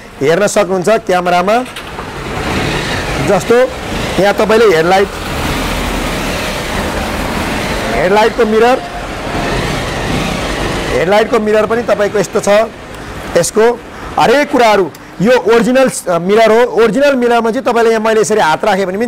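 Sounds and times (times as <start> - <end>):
man talking: 0.0 - 1.7, 3.2 - 5.1, 7.8 - 9.0, 10.9 - 19.0
passing traffic: 0.0 - 18.8
heavy vehicle rumbling past: 1.8 - 14.4.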